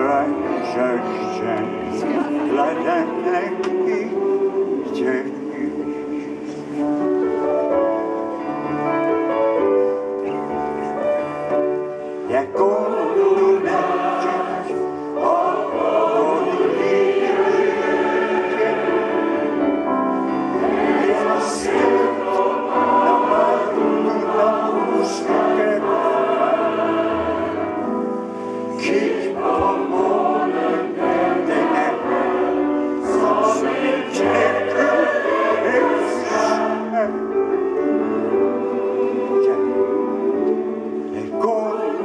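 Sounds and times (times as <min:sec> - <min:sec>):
mixed choir singing: 0:00.0 - 0:09.2, 0:10.9 - 0:42.0.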